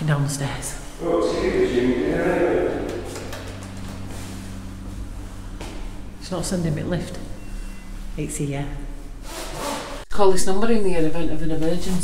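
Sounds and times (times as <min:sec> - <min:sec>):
low electrical hum: 0:00.0 - 0:12.0
woman's voice: 0:06.2 - 0:07.4, 0:08.2 - 0:09.0, 0:10.1 - 0:12.0.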